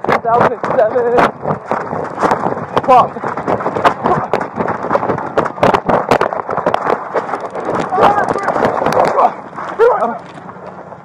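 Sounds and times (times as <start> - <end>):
person speaking: 7.7 - 10.3.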